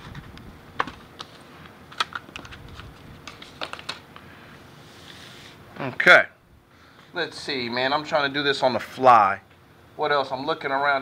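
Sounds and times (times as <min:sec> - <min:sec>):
packaging clicks and taps: 0:01.9 - 0:04.0.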